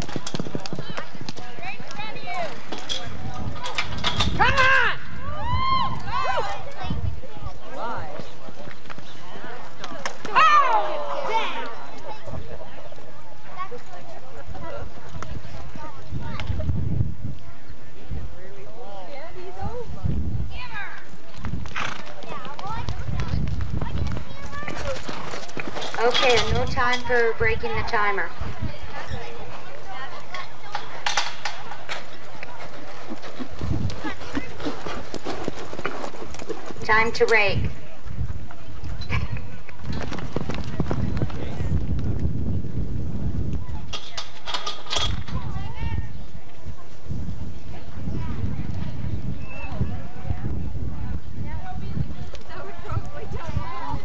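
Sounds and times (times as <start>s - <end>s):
horse hoofbeats on dirt: 0.0s - 4.4s, 21.3s - 27.1s, 31.6s - 42.6s.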